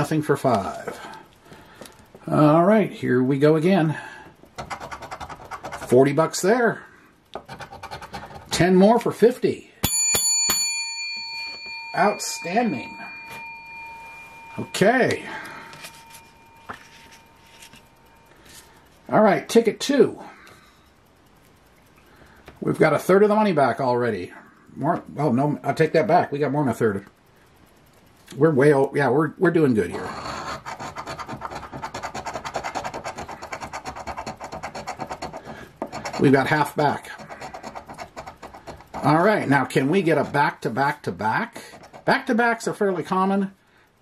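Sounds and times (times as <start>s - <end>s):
coin scraping lottery ticket: 4.6s - 6.1s, 7.4s - 8.7s, 29.9s - 40.4s, 41.6s - 42.2s
bell-like metallic ring: 9.8s - 18.4s.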